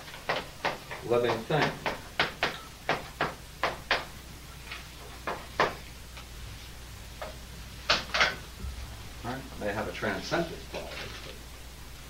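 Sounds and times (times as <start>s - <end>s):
chalk tapping on blackboard: 0.0s - 4.1s, 5.2s - 5.8s.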